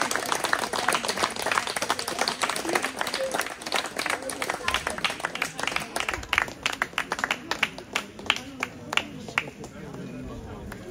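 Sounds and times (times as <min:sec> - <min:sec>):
crowd clapping: 0:00.0 - 0:10.9.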